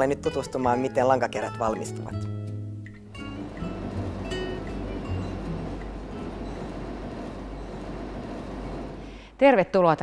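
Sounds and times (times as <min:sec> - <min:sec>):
textile machinery running: 0:03.2 - 0:09.2.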